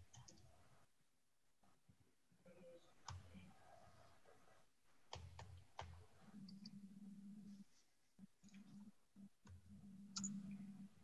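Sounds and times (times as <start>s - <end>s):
soft clicks: 9.4s - 10.6s.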